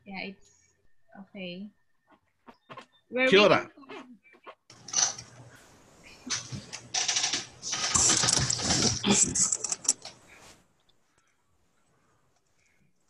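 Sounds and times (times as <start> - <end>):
rustling and clicking handling noise: 4.7 - 5.6, 6.3 - 11.4.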